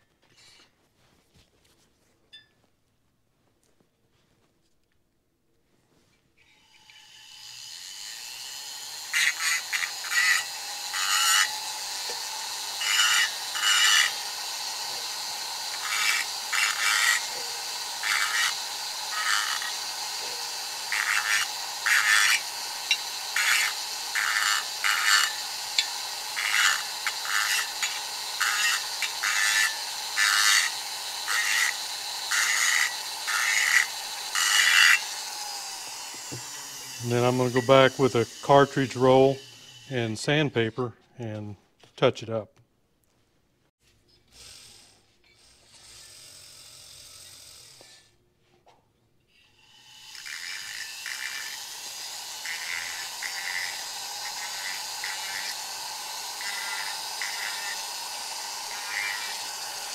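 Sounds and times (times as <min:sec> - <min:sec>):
rotary tool whining: 0:06.4 - 0:40.8, 0:43.8 - 0:48.2, 0:49.3 - 0:59.9
grinding rasps on metal: 0:06.8 - 0:41.4, 0:44.3 - 0:48.2, 0:49.4 - 0:59.9.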